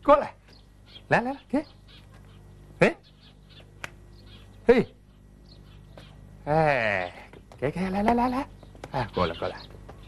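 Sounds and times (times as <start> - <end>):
faint bird chirps: 0.2 - 7.3
man calling coaxing words: 2.8 - 3.1, 6.4 - 9.6.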